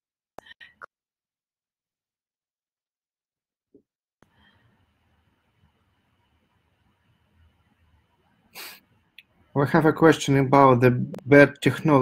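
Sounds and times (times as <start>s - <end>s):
sharp breath or sniff: 8.5s - 8.9s.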